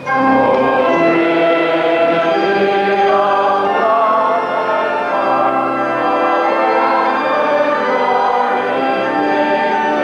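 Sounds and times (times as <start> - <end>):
choir singing sustained chords: 0.0 - 10.0.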